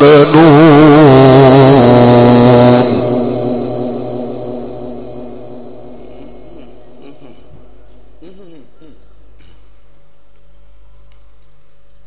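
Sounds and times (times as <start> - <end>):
man reciting through loudspeaker: 0.0 - 4.8
faint steady hum: 0.0 - 12.0.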